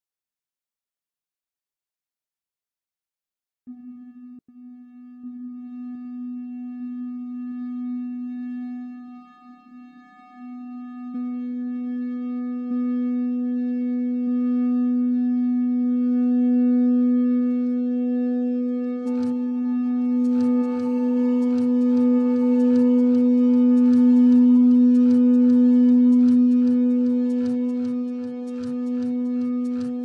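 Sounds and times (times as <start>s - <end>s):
higher steady electronic tone: 3.7s - 30.0s
low electronic drone: 3.7s - 30.0s.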